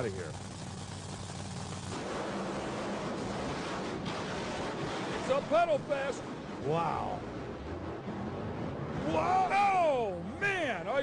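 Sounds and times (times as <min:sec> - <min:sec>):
dragster engines at full throttle: 0:00.0 - 0:11.0.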